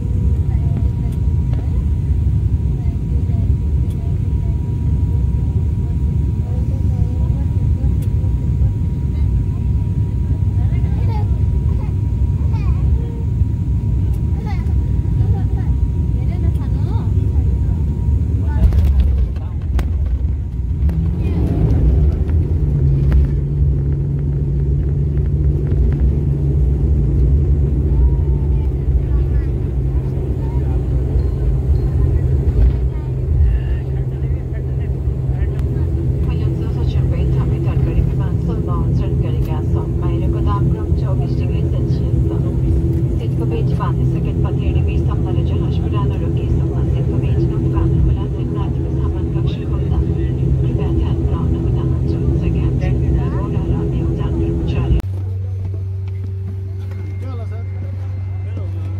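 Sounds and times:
higher steady hum: 0.0s - 58.9s
turboprop engine and propeller drone: 0.0s - 58.9s.

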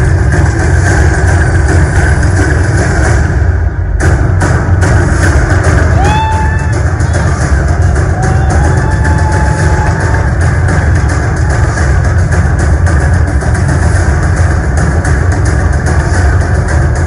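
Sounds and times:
stage musical music over loudspeakers: 0.0s - 17.0s.

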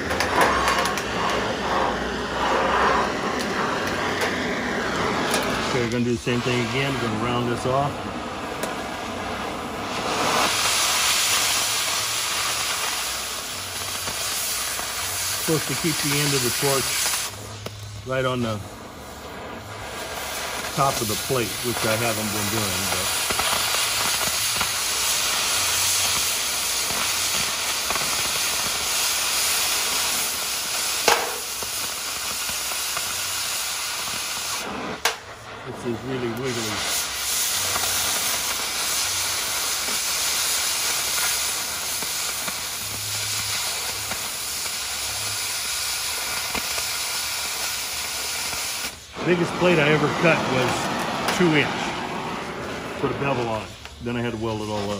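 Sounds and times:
cutting torch hissing: 0.0s - 54.9s
sharp torch pop: 0.0s - 54.9s.

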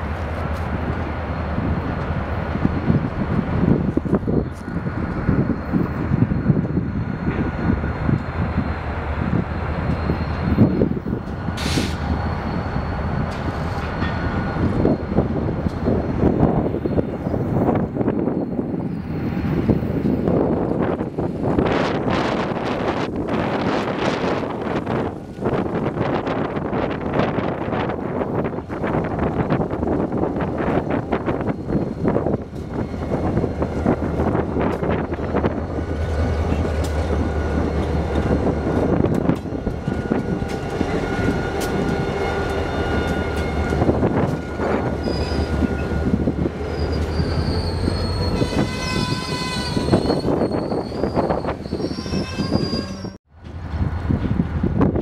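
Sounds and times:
diesel locomotive engine drone: 0.0s - 55.0s
train wheels clattering on rails: 19.8s - 50.8s
high squealing tones: 35.1s - 53.2s.

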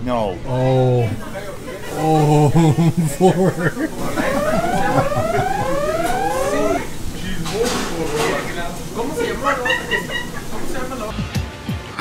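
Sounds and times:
whooping alarm siren: 3.9s - 10.7s.

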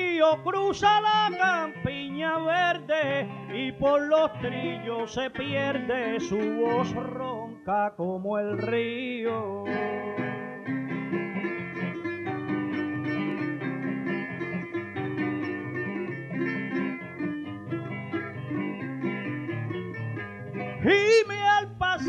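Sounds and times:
man singing: 0.0s - 10.8s, 20.8s - 22.0s
plucked lute and guitar melody: 0.0s - 22.0s.

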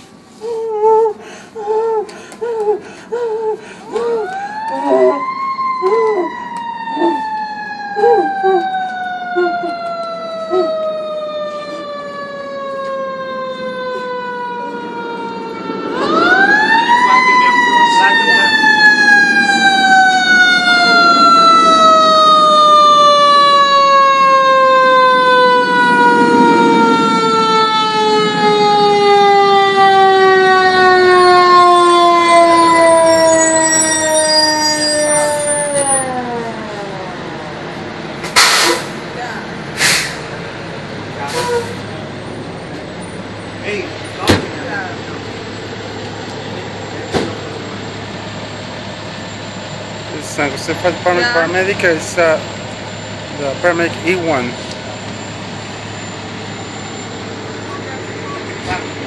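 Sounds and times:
mechanical fire engine siren wailing: 0.0s - 39.6s, 40.5s - 59.0s.

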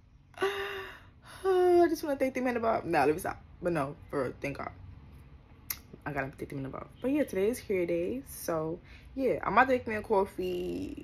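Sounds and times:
woman's breathy vocal sounds: 0.4s - 1.4s.

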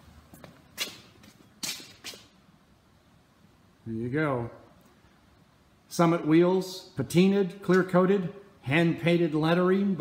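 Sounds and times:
shoes scuffing on concrete: 0.3s - 2.4s.

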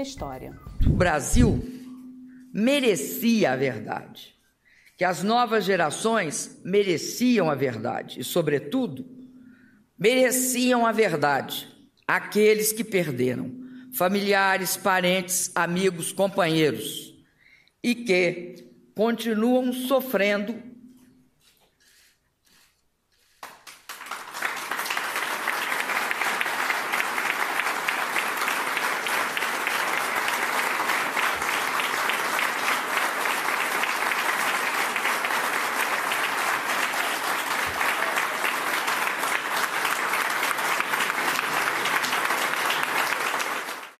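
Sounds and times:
audience applauding: 23.3s - 44.0s.

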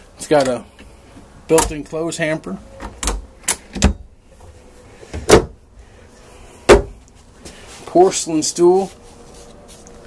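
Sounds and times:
wooden cabinet door clunking: 5.2s - 5.6s, 6.7s - 7.0s.

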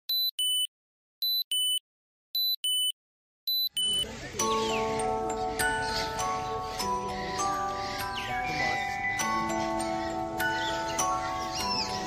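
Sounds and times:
electronic countdown beeps: 0.1s - 1.8s, 2.4s - 4.1s.

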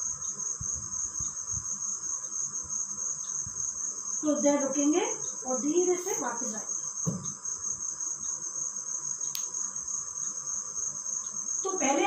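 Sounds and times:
feet thudding on floor: 7.0s - 7.3s
sharp click: 9.3s - 9.5s.

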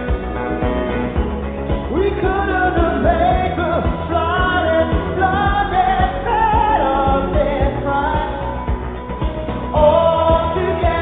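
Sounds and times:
person singing lead vocal: 0.0s - 11.0s
synth-pop band with steady beat: 0.0s - 11.0s.

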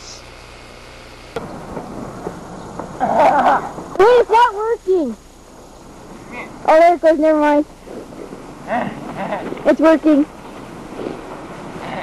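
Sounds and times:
low rumbling crackling noise: 0.0s - 12.0s.

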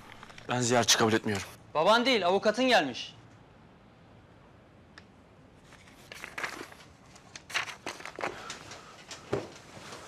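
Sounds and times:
clothing and paper rustling: 5.6s - 10.0s.

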